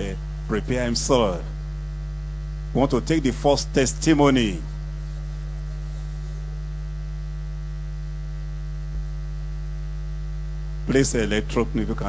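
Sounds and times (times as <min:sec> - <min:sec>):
electrical mains hum: 0:00.0 - 0:12.0.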